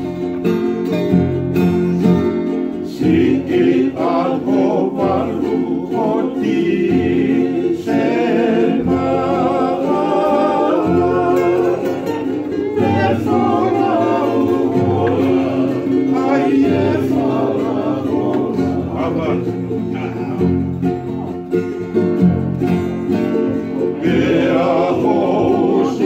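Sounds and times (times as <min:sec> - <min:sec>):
strummed acoustic guitars and ukuleles: 0:00.0 - 0:26.0
men singing in harmony: 0:02.9 - 0:19.8, 0:24.0 - 0:26.0.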